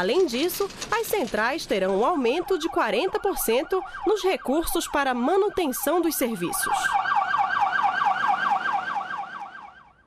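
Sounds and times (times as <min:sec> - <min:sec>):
ambulance siren yelping: 0:02.1 - 0:10.0.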